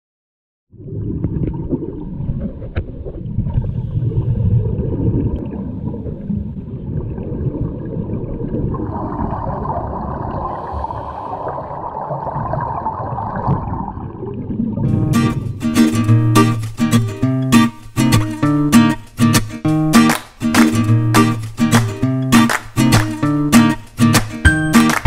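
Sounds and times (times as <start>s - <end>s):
low underwater rumble: 0.7s - 15.6s
regulator bubbles gurgling: 0.7s - 15.6s
bubbling hiss: 8.9s - 12.1s.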